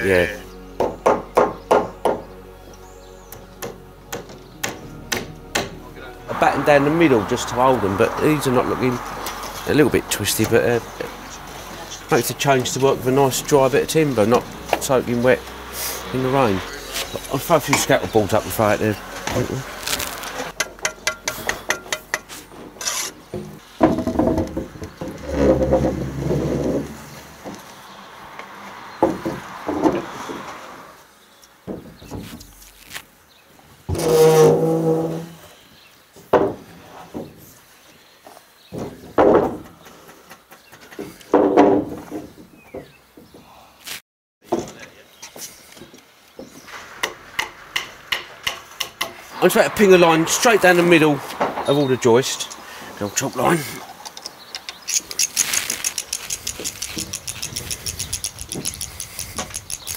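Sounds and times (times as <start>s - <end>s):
timber knocks and thumps: 20.6s - 27.7s, 29.0s - 30.6s, 31.6s - 32.5s, 36.2s - 37.6s, 38.7s - 43.5s, 45.8s - 52.1s
footsteps on scaffold boards: 28.4s - 30.6s, 31.6s - 32.6s, 38.2s - 43.6s, 44.4s - 46.8s.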